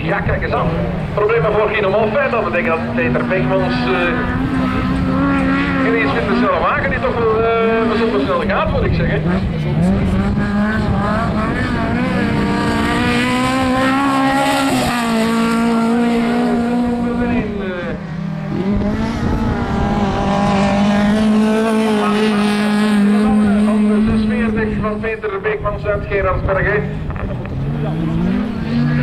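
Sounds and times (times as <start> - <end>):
race car engine revving: 0.0 - 29.0.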